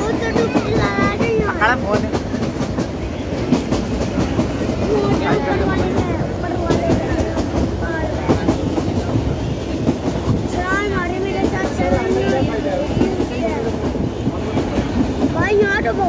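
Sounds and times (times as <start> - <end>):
train wheels rumbling on rails: 0.0 - 16.0.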